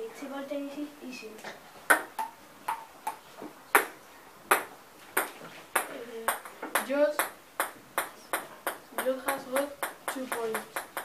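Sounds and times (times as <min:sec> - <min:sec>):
ping-pong ball hitting paddles: 0:01.9 - 0:11.0.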